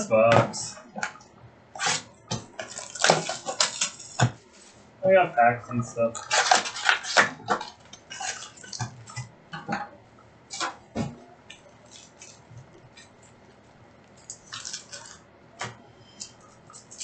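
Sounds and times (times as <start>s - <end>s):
plastic wrapping being torn: 1.8s - 4.3s, 6.1s - 9.2s, 10.5s - 10.8s, 11.5s - 13.4s, 14.0s - 15.3s
foil packs rustling: 1.8s - 4.9s, 6.0s - 9.2s, 11.6s - 15.2s.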